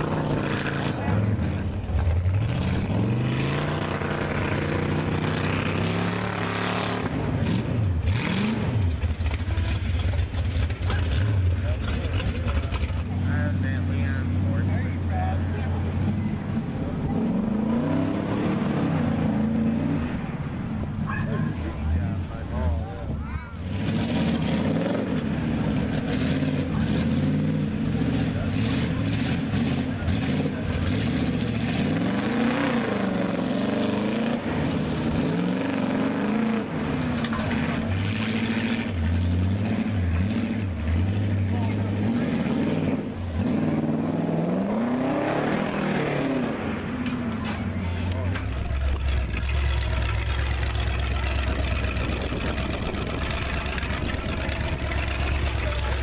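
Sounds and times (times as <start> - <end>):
truck engine revving: 0.0 - 56.0
low engine idle: 48.0 - 56.0.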